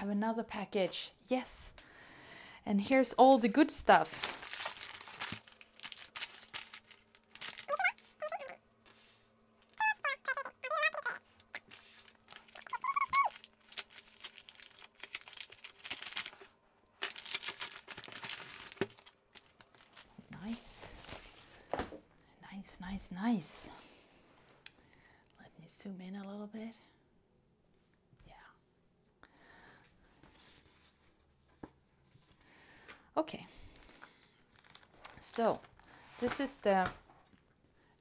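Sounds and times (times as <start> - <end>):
plastic bag crinkling: 3.9 - 8.6, 9.7 - 21.8, 33.8 - 36.4
person muttering: 7.6 - 8.6, 9.8 - 11.7, 12.4 - 13.4.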